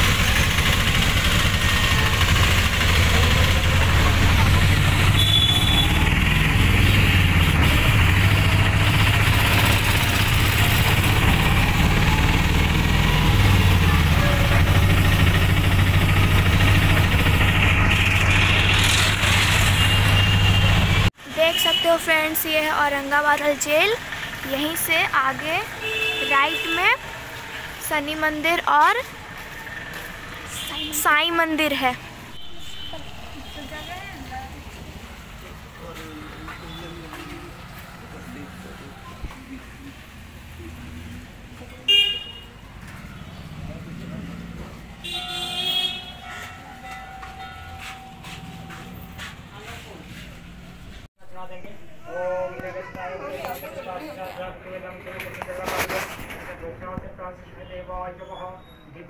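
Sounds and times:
auto-rickshaw engine droning: 0.0s - 58.1s.

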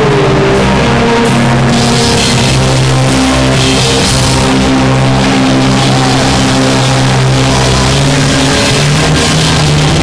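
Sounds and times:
live rock band playing: 0.0s - 10.0s
cymbals crashing: 1.2s - 10.0s.

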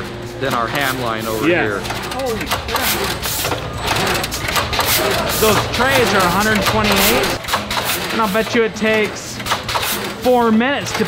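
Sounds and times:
low machine hum: 0.0s - 11.0s
machine clicking and clattering: 0.0s - 11.0s.

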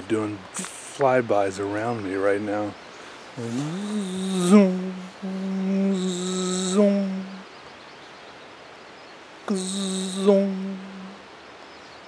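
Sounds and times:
forest background: 0.0s - 12.0s
man imitating a buzzing bee: 3.4s - 7.4s, 9.5s - 11.2s.

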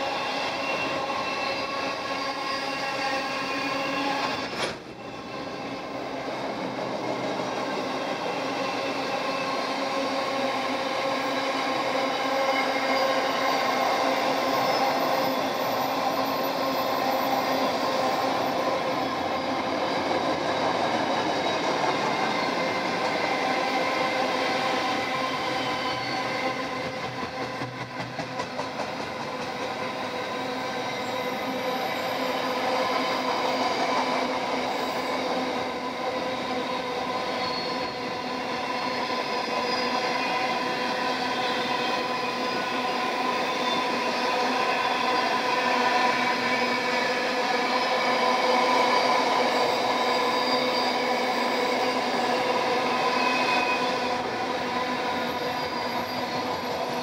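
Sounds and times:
freight train rolling past: 0.0s - 57.0s.

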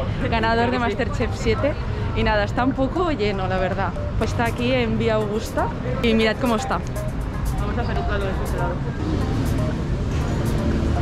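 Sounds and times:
people talking close by: 0.0s - 9.8s
low rumble of traffic: 0.0s - 11.0s.

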